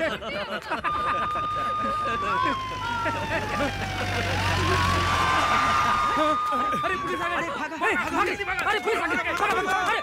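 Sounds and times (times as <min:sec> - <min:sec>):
police siren wailing: 0:00.9 - 0:09.9.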